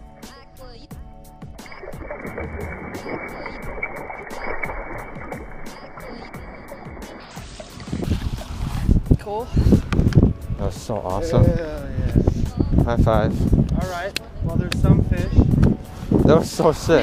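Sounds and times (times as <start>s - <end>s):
background music with steady beat: 0.0s - 8.1s, 8.9s - 17.0s
water splashing and sloshing: 1.5s - 10.3s.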